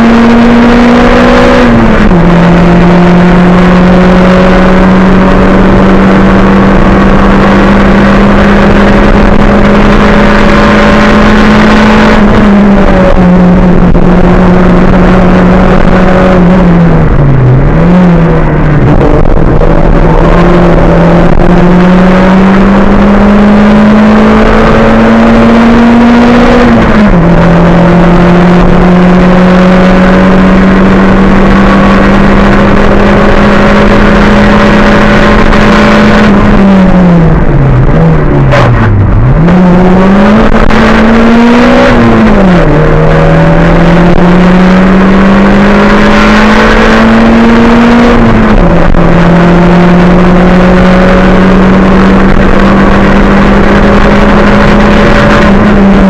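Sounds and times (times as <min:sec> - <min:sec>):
race car engine at high revs: 0:00.0 - 0:56.0.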